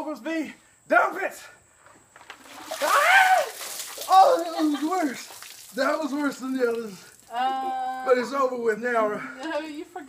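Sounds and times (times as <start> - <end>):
ice water splashing: 2.3 - 7.4
man crying out: 2.9 - 4.8.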